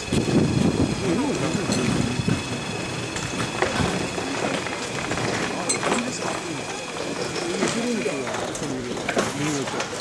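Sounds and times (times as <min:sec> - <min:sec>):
faint crowd chatter: 0:00.8 - 0:10.0.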